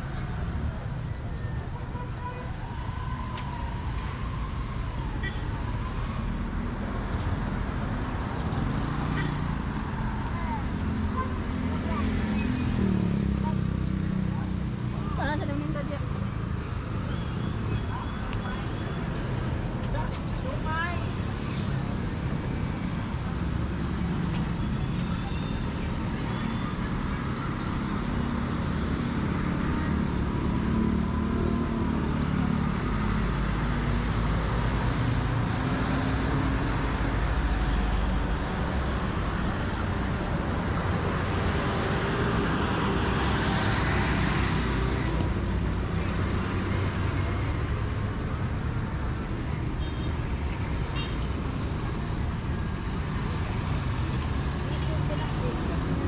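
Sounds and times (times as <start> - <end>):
road traffic: 0.0 - 56.0.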